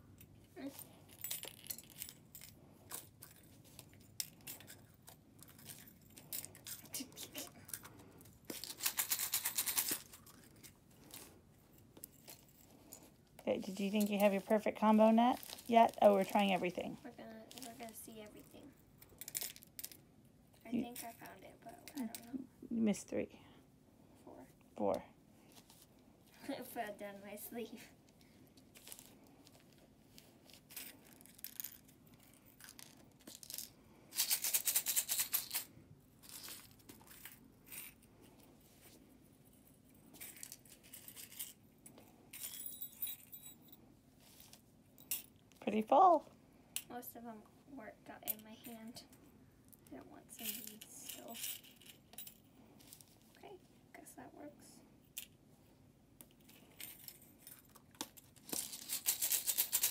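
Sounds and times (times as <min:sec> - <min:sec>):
bead shaker rattling: 0:00.6 - 0:11.4, 0:12.0 - 0:20.0, 0:28.7 - 0:38.1, 0:38.8 - 0:41.6, 0:50.3 - 0:53.3, 0:56.4 - 0:59.9.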